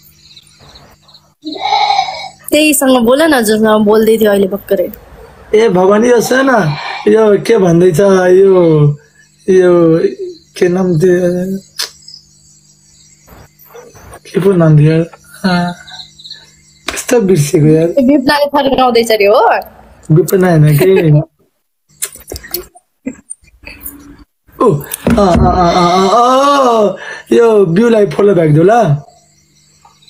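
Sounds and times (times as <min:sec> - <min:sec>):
crickets chirping: 0:00.0 - 0:30.0.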